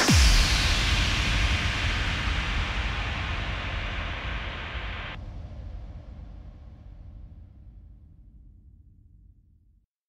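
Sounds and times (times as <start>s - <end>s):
low rumble: 0.0s - 9.5s.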